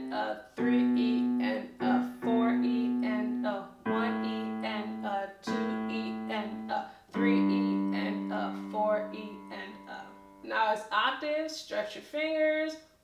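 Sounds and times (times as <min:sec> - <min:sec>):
digital piano bass notes: 0:00.6 - 0:10.5.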